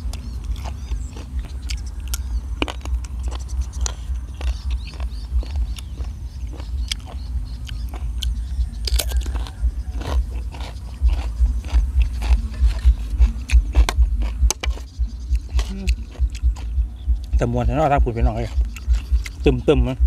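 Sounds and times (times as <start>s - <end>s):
crunchy chewing: 0.0s - 20.0s.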